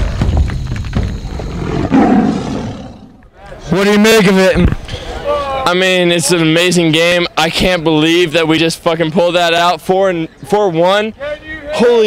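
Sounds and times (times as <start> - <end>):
lion roar: 1.2 - 3.3.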